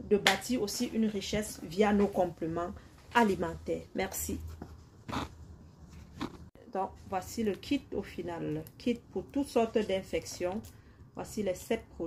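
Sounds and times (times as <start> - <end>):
woman speaking: 0.0 - 4.6, 6.6 - 12.0.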